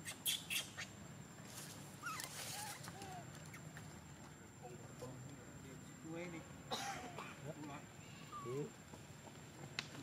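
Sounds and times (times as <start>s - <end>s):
sharp cough-like burst: 6.7s - 7.4s.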